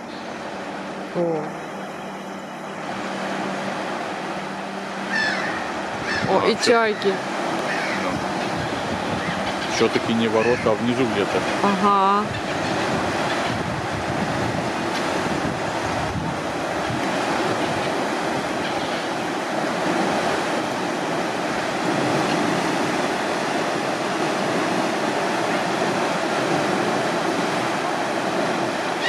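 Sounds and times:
water rushing through sluices: 0.0 - 29.0.

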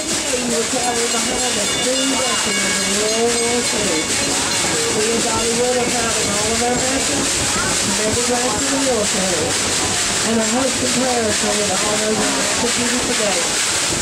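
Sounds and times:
indistinct voices: 0.0 - 14.0
steam train hiss and rumble: 0.0 - 14.0.

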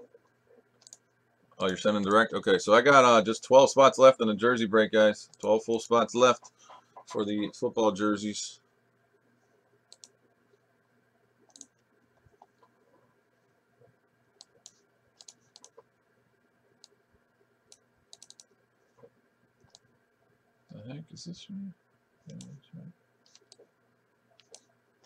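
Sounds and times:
faint steady hum: 0.0 - 25.0
mouse and keyboard clicking: 0.8 - 1.0, 9.9 - 10.2, 11.5 - 12.8, 14.4 - 15.9, 17.7 - 19.9, 23.3 - 23.7, 24.4 - 24.7.

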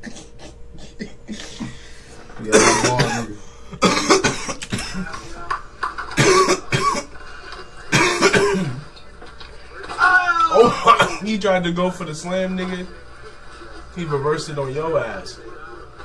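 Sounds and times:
person coughing hard: 0.0 - 1.8, 2.5 - 5.1, 6.1 - 7.1, 7.9 - 8.8, 10.6 - 11.2.

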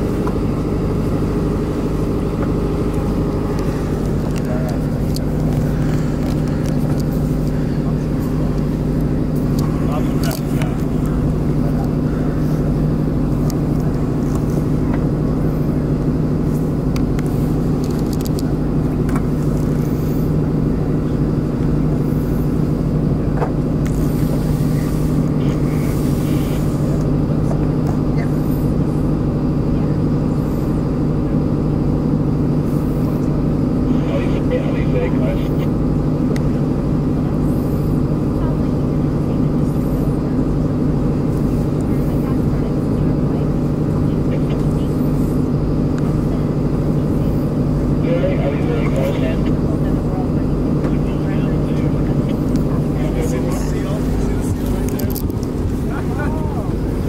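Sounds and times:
boat engine droning: 0.0 - 57.0.

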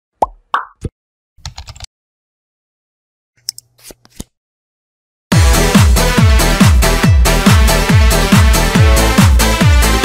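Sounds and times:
keyboard typing clicks: 1.4 - 1.9.

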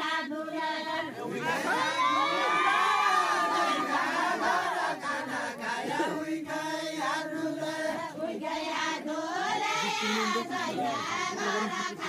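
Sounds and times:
group singing a chant: 0.0 - 12.0
crowd cheering and shouting: 1.3 - 4.7.

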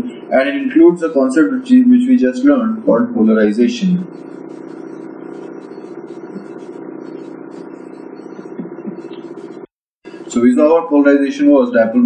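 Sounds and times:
steady background hum: 0.0 - 12.0.

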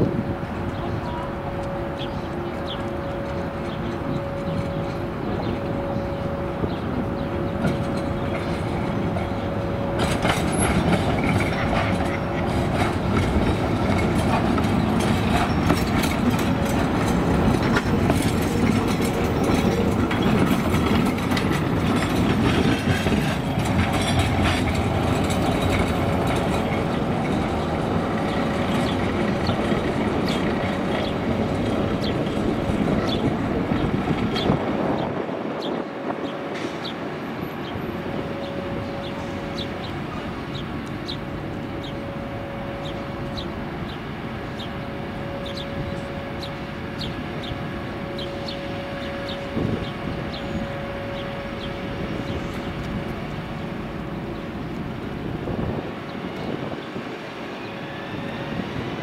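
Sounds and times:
tram wheels rumbling on rails: 0.0 - 59.0
wheels clicking over track joints: 7.3 - 35.2.

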